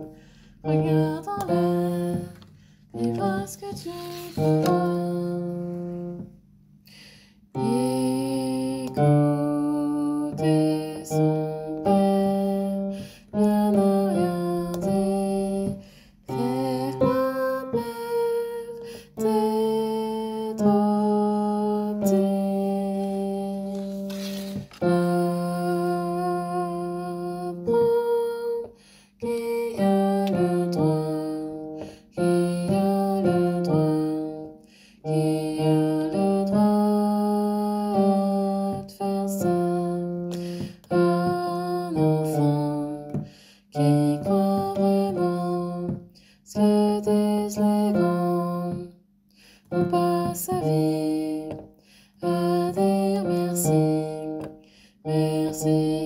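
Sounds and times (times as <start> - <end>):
singers breathing: 0.1 - 0.6, 6.9 - 7.5.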